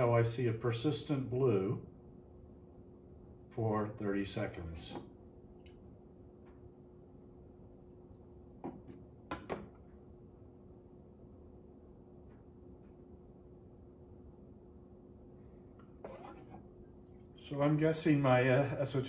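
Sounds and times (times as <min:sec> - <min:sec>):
faint hum with thin tone: 0:00.0 - 0:19.0.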